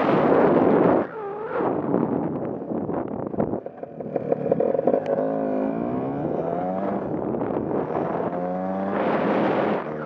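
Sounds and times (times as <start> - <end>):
scooter engine running: 0.7 - 8.1.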